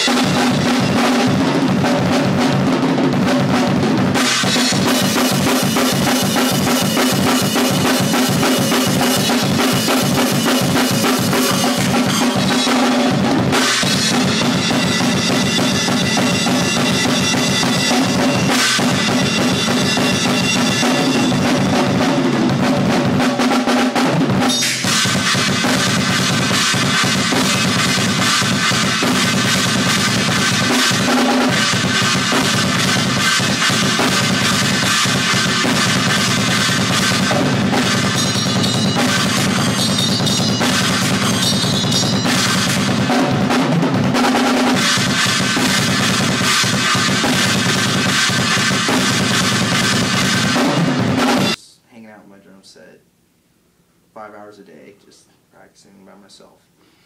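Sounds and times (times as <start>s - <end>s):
drum kit played hard: 0.0s - 51.6s.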